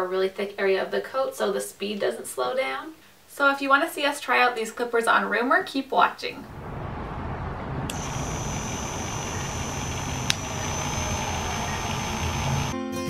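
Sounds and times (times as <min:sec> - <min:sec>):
high whine: 0:06.5 - 0:12.8
electric clippers buzzing: 0:07.9 - 0:12.8
sharp click: 0:10.2 - 0:10.5.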